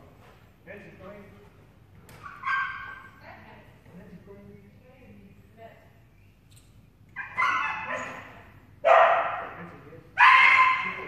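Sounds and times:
small dog barking: 7.2s - 9.6s, 10.2s - 11.0s.

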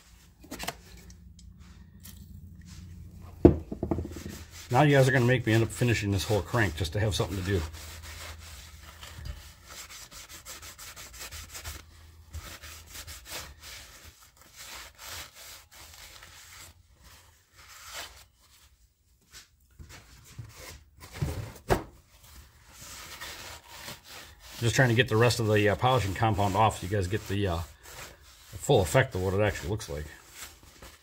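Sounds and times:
cloth rag rubbing metal: 2.6s - 19.5s, 22.6s - 31.0s.

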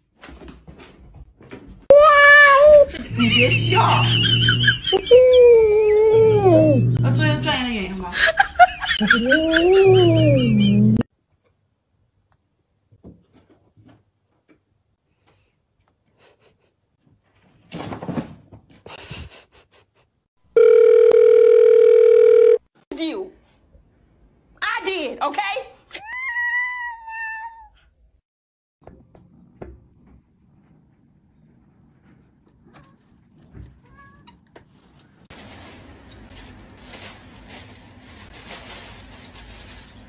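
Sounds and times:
cat meowing: 26.0s - 27.8s.

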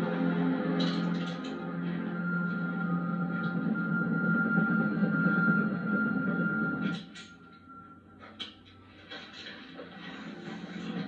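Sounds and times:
tense film score on television: 0.0s - 11.0s.

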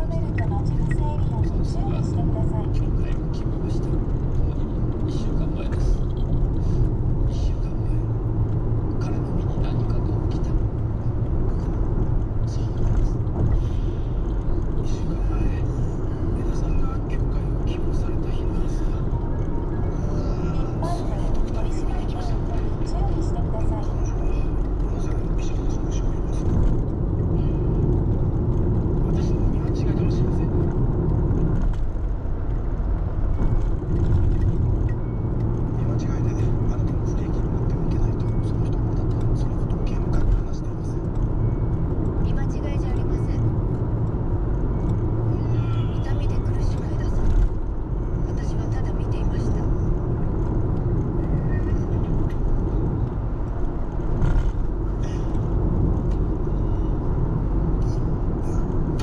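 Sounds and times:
road and engine rumble in car: 0.0s - 59.0s.

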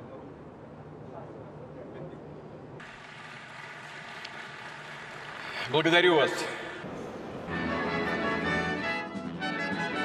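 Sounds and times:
crowd ambience hiss: 0.0s - 7.7s.

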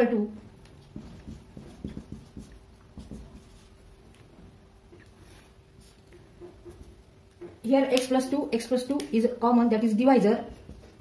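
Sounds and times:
marker pen tapping and scraping: 0.6s - 4.3s.

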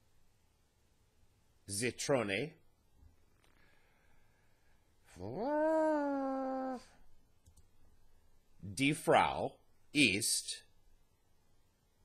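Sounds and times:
drawn-out voiced cry: 5.1s - 7.0s.

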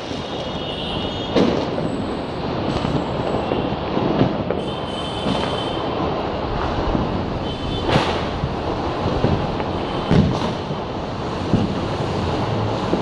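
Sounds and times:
fireworks and firecrackers: 0.0s - 13.0s
sharp bangs: 6.9s - 10.8s.

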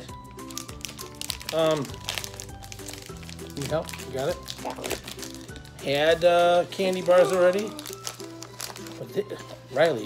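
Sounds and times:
background music: 0.0s - 10.0s
candy wrappers crinkling: 0.0s - 10.0s
person saying um: 7.0s - 7.9s.

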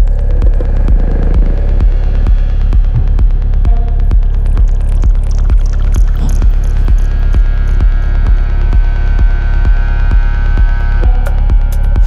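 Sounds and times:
deep rolling bassline: 0.0s - 12.0s
kick drum: 0.0s - 12.0s.

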